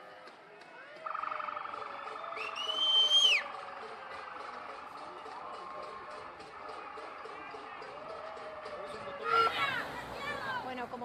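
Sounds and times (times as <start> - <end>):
street noise: 0.0 - 11.0
police siren: 0.8 - 9.6.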